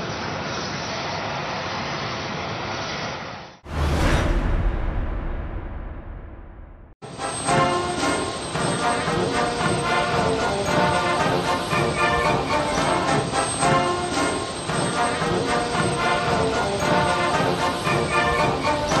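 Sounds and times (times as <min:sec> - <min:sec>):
background music with sustained notes: 0:07.0 - 0:19.0.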